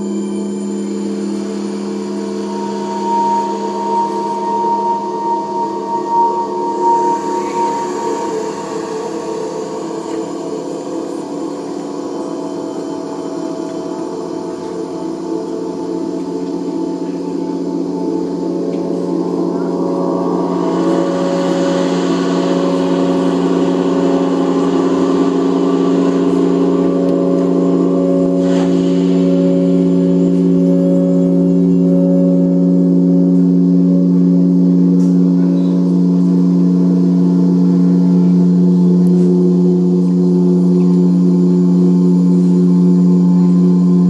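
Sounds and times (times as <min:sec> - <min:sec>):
higher wavering tone: 0:00.0 - 0:44.0
low drone chord: 0:00.0 - 0:44.0.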